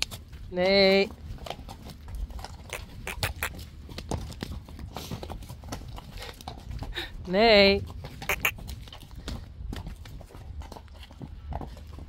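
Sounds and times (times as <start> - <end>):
horse hooves on concrete: 0.0 - 12.0.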